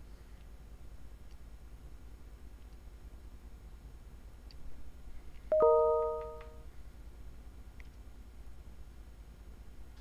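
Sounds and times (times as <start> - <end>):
two-note notification chime: 5.5 - 6.6.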